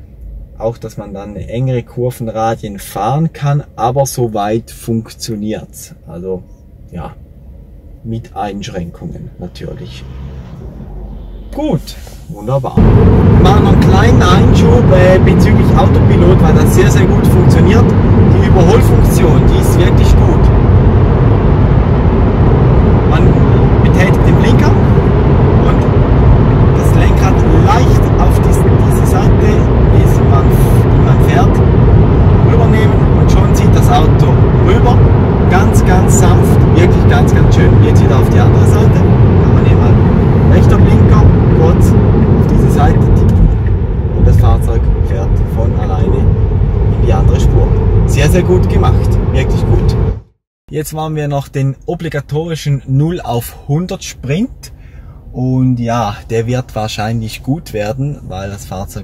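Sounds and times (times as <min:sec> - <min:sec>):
road and tyre noise in car: 0:00.0 - 0:02.2, 0:06.3 - 0:50.4.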